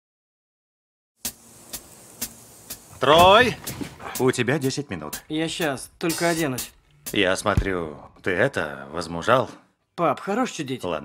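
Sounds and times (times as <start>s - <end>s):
sharp ticks: 1.2s - 2.9s, 5.1s - 5.8s.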